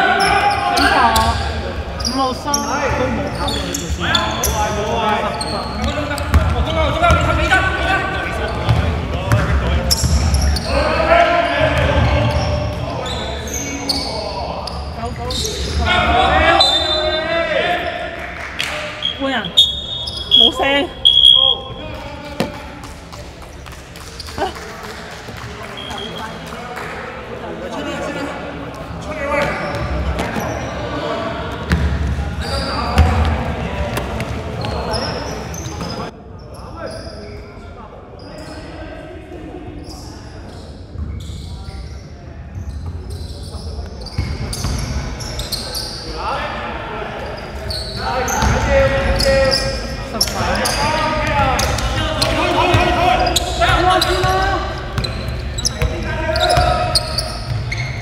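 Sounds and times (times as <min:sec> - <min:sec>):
echoing indistinct voices: 0:00.0 - 0:41.0, 0:41.6 - 0:58.0
basketball bouncing on wooden court: 0:05.8 - 0:07.3, 0:08.6 - 0:10.3, 0:31.7 - 0:32.1, 0:33.0 - 0:33.3, 0:55.0 - 0:57.9.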